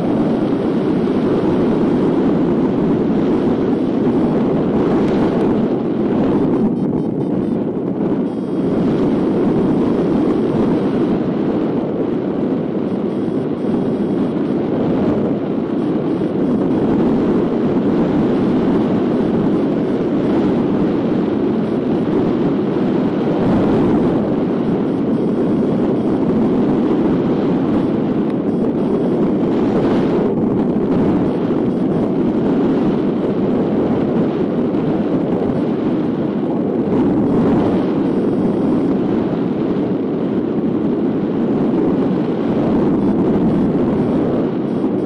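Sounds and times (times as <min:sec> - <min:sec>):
wind buffeting microphone: 0:00.0 - 0:45.0.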